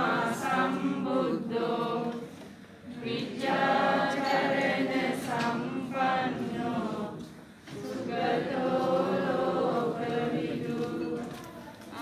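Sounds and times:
crowd chanting in unison: 0.0 - 11.2.

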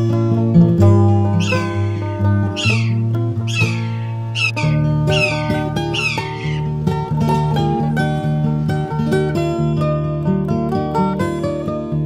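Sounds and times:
acoustic guitar music: 0.0 - 12.0
bird squealing call: 1.4 - 6.7.

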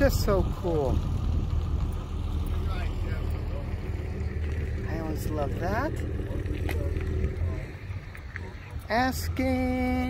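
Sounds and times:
faint voices: 0.0 - 10.0
vehicle engine idling: 0.0 - 10.0.

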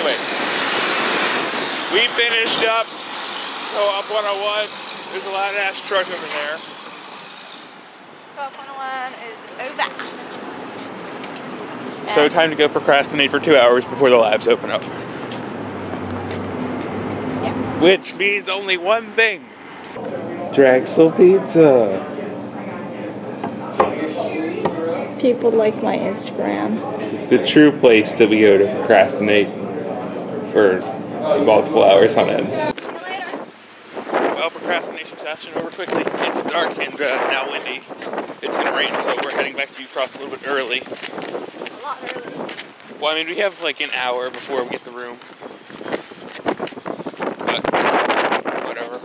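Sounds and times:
wind buffeting microphone: 32.6 - 49.0.

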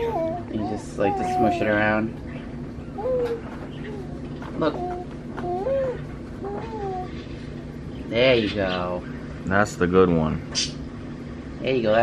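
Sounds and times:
baby cooing and whining: 0.0 - 2.0, 3.0 - 7.2.

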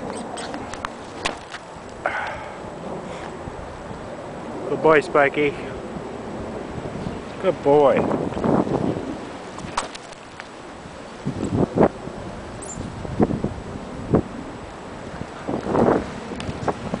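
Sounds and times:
handling thumps and rustles: 0.0 - 1.7, 9.5 - 10.6
wind noise on microphone: 0.0 - 17.0.

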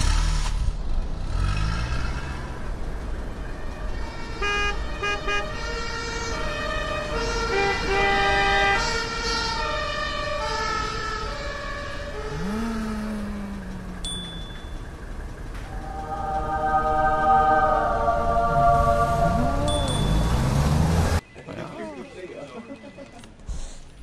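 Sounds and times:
low traffic rumble: 0.0 - 21.7
car horns honking: 3.6 - 9.4, 18.8 - 21.2.

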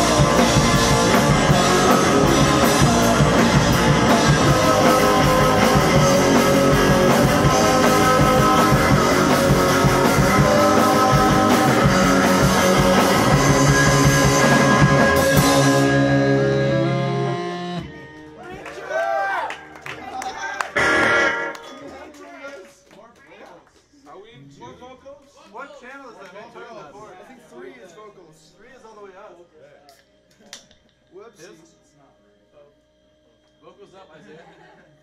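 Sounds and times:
live rock band playing: 0.0 - 18.5, 20.6 - 22.1
electric guitar: 0.0 - 18.6, 20.6 - 22.0.

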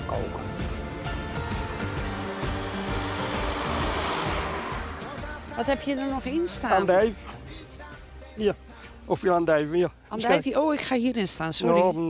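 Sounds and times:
van driving past: 0.0 - 7.8
background music: 0.0 - 12.0.

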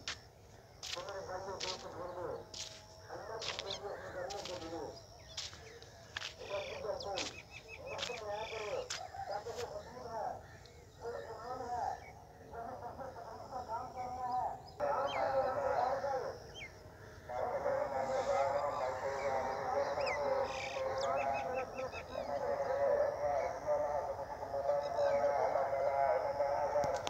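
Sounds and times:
birds chattering: 0.0 - 27.0.

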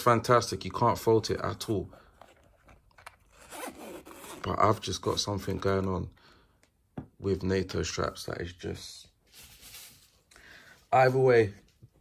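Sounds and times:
zipper being drawn closed: 3.3 - 4.5.

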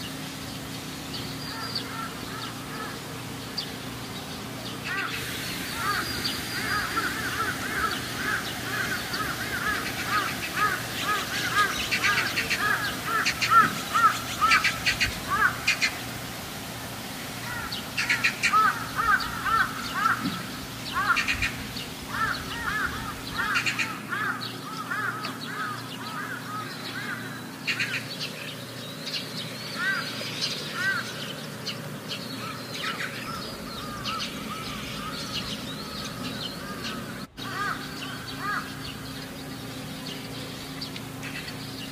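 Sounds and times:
birds calling: 0.0 - 41.9.

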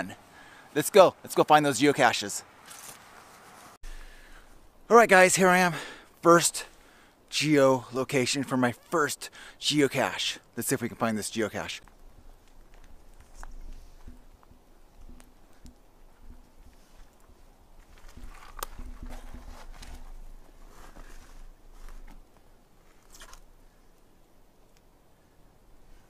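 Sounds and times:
footsteps on forest floor: 2.6 - 4.0, 11.7 - 23.5
twig cracking: 17.8 - 23.8.

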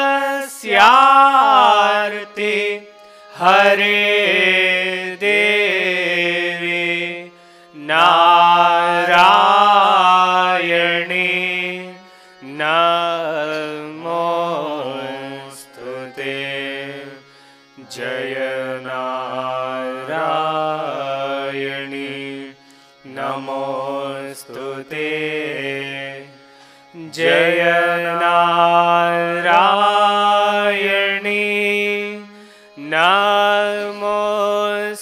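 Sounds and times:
person singing devotional hymn: 0.0 - 35.0.

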